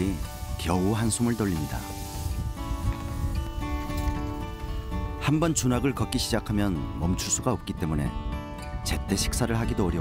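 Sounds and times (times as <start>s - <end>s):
plucked acoustic guitar: 0.3s - 10.0s.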